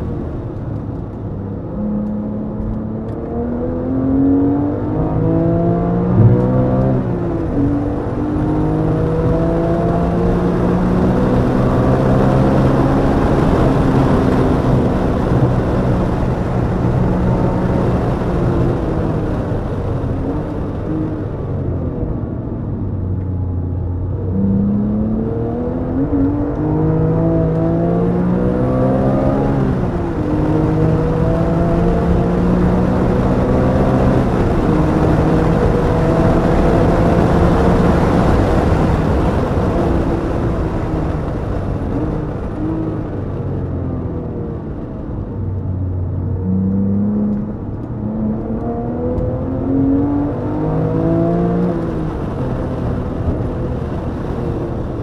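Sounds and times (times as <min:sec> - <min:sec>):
car engine accelerating through gears: 0:00.0 - 0:55.0
wind and road noise: 0:00.0 - 0:55.0.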